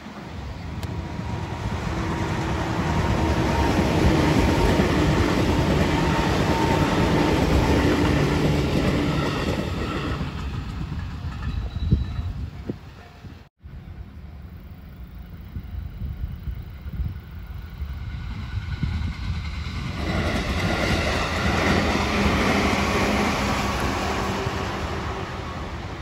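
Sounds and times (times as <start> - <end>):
electric train passing: 0.0 - 26.0.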